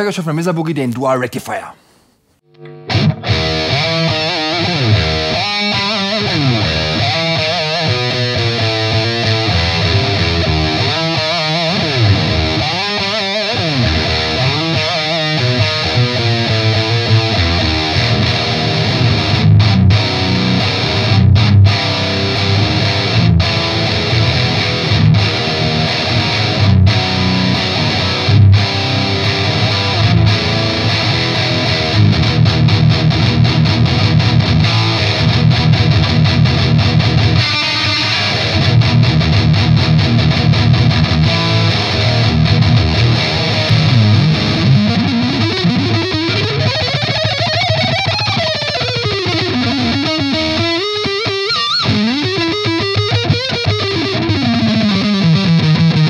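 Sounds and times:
distorted electric guitar riffs: 2.4s - 56.0s.

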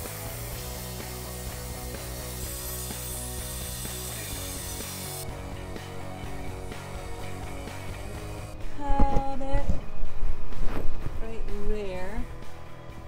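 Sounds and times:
power tool hissing on steel: 0.0s - 5.3s
background music: 0.0s - 13.0s.

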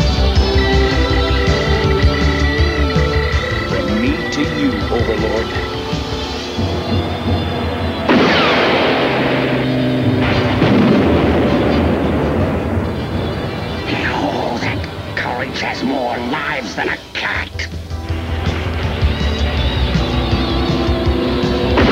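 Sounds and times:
cartoon action music: 0.0s - 21.9s
rushing blast-like noise: 3.5s - 15.8s
loud noisy blast with whoosh: 6.7s - 14.0s.

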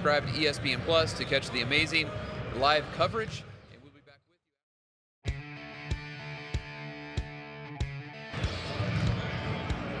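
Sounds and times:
background music: 5.3s - 10.0s.

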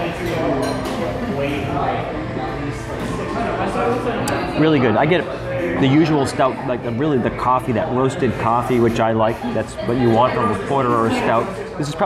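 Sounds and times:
people talking in background: 0.0s - 12.0s.

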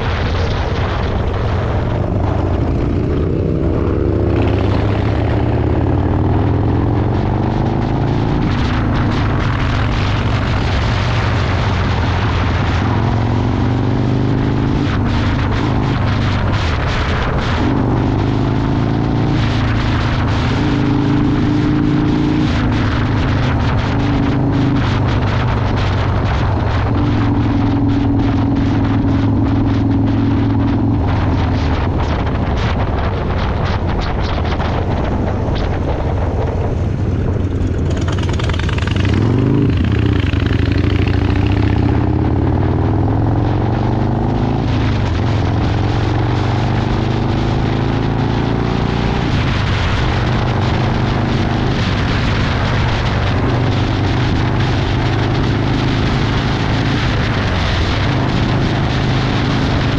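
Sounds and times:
motorcycle engine running: 0.0s - 59.9s
wind buffeting microphone: 0.0s - 59.9s.

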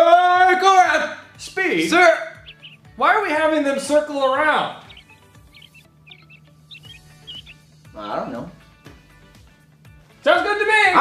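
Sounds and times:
faint background music: 0.0s - 11.0s
small birds chirping: 1.4s - 9.2s.

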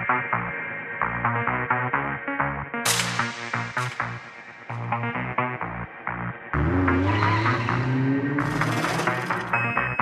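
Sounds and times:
racing car engine rising: 6.5s - 10.0s.

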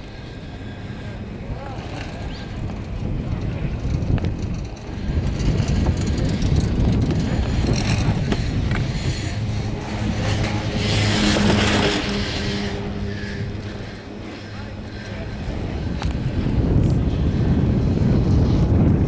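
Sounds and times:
chairlift low rumble: 0.0s - 19.0s
chairlift sheave wheels humming: 0.0s - 19.0s
wind on microphone: 0.0s - 19.0s.

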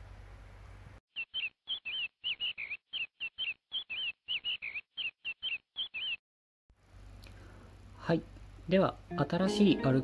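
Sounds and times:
bird chirping: 1.1s - 6.2s.

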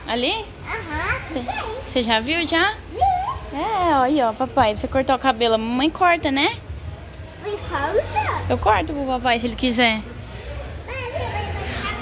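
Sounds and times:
faint background voices: 0.0s - 12.0s
small child's high voice: 0.7s - 1.9s.

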